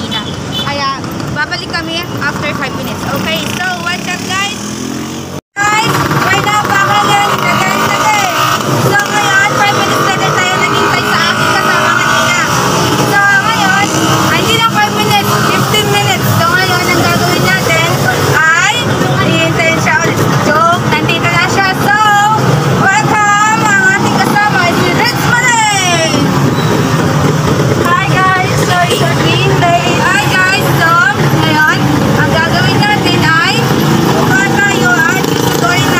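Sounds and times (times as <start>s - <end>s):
people's voices: 0.0s - 4.7s, 5.6s - 35.9s
vehicles passing: 0.0s - 35.9s.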